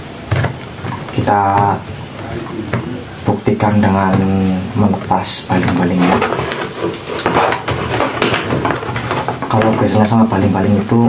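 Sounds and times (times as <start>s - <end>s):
plastic fan parts rattling: 0.2s - 11.0s.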